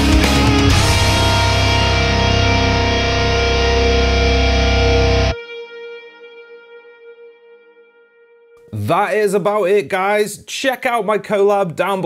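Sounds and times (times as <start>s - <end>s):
distorted electric guitar chord: 0.0s - 8.8s.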